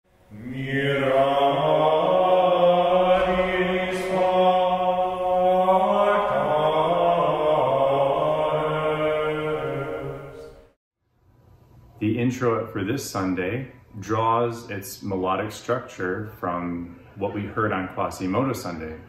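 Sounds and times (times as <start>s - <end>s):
men singing chant in unison: 0.3s - 10.7s.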